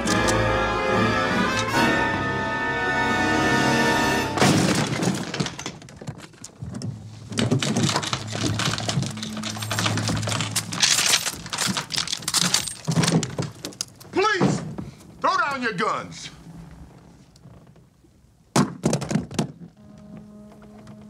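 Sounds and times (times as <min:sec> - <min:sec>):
tense film-score music: 0:00.0 - 0:04.4
loud crash: 0:04.3 - 0:05.8.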